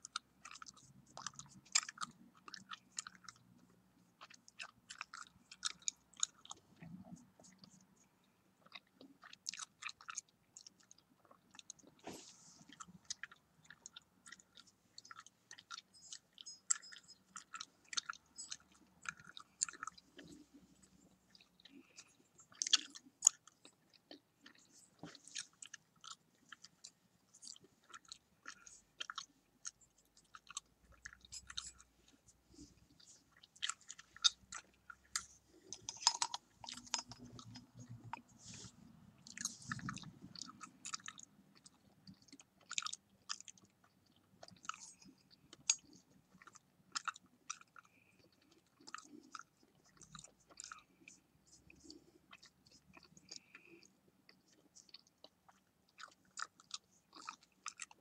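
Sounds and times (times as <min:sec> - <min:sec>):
gum chewing with wet smacks: 0:00.0 - 0:58.0.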